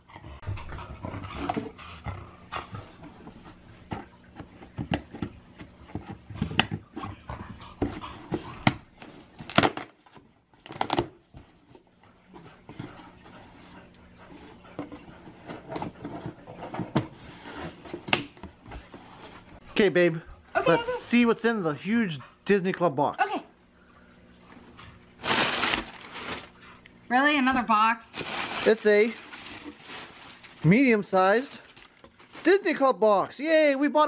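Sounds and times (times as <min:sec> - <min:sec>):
tape ripping: 0:25.2 - 0:26.5.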